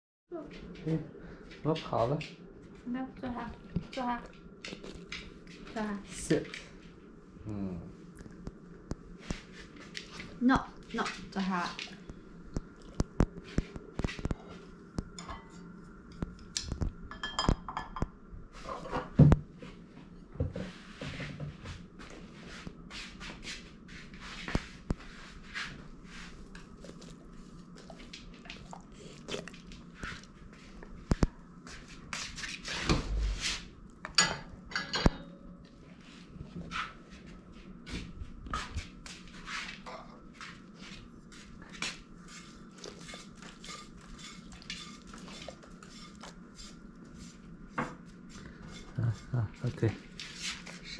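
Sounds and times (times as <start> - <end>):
tableware clinking: 17.1 - 18.1, 34.2 - 35.5.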